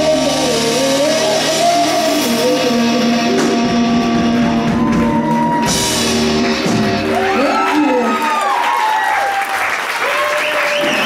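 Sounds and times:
live rock band playing: 0.0 - 8.6.

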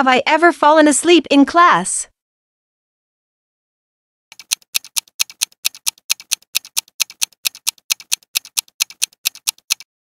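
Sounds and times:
countdown timer ticking: 4.3 - 9.9.

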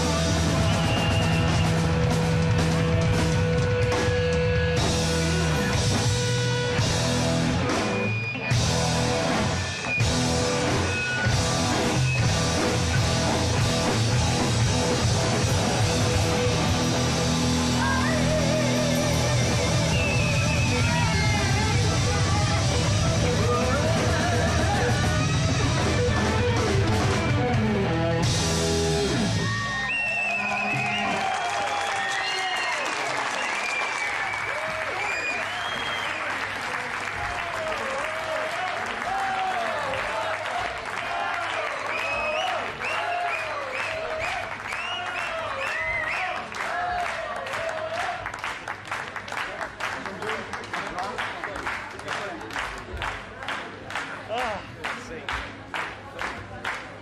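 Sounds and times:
audience cheering and clapping: 0.0 - 7.8, 8.4 - 27.5, 29.0 - 57.0
live rock band with guitar: 0.0 - 31.1.

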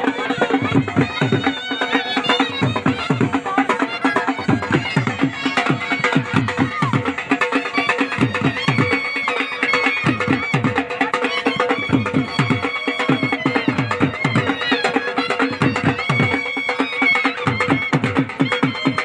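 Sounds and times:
bagpipe drone: 0.0 - 19.0
booming dhol drums: 0.0 - 19.0
ornamented bagpipe melody: 0.0 - 19.0.

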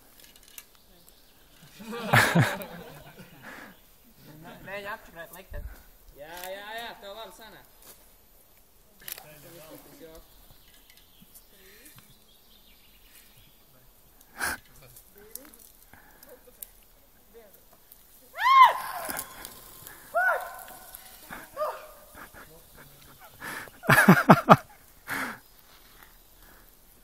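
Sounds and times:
quick cries falling in pitch: 18.4 - 22.1.

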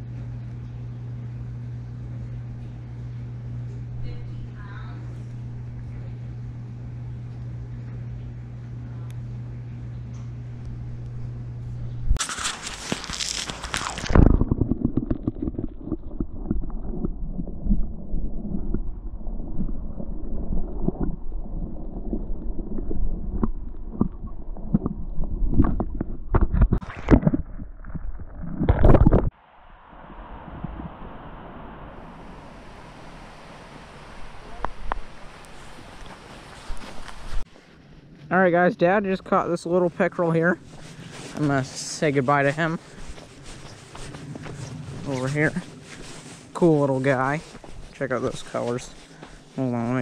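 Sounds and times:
muffled underwater knocks and bumps: 19.5 - 29.3
steady outdoor hiss: 29.4 - 50.0.

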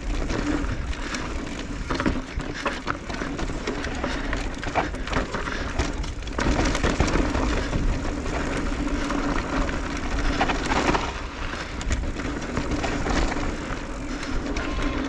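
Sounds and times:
tyres crunching over dirt and stones: 0.0 - 15.0.

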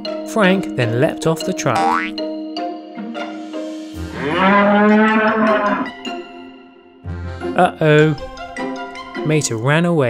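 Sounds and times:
bull-like roar: 4.0 - 5.9.

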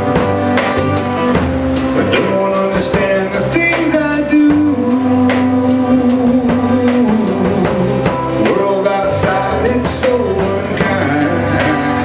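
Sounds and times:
drum kit beat: 0.0 - 12.0
electric guitar: 0.0 - 12.0.

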